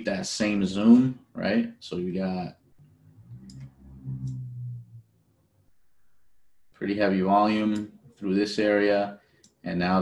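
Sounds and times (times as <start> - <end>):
man humming uhh: 3.3 - 5.0.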